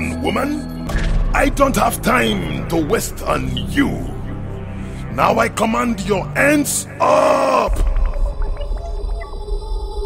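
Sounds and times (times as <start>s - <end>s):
synthesized drone tones: 5.9s - 10.0s.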